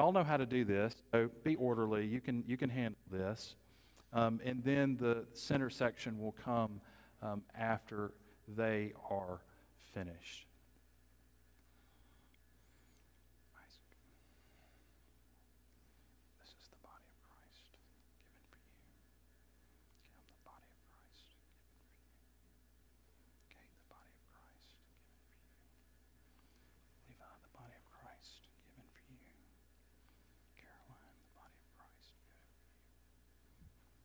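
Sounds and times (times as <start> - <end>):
person whispering: 0.0 - 10.5, 11.6 - 14.8, 15.4 - 22.4, 23.3 - 33.1
steady low hum: 0.0 - 34.0.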